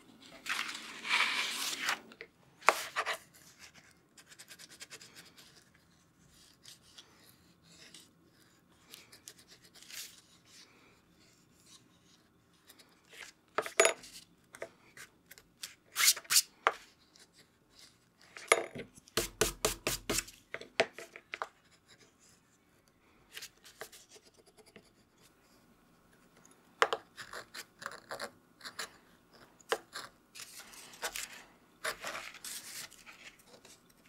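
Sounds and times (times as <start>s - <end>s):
hands rubbing and scratching paper: 0.2s - 5.7s, 30.4s - 34.0s.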